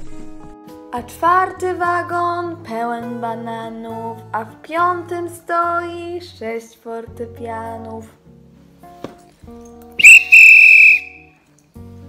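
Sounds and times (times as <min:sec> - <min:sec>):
soft musical accompaniment: 0:00.0 - 0:10.1, 0:10.8 - 0:12.0
hand whistle blast: 0:10.0 - 0:11.3.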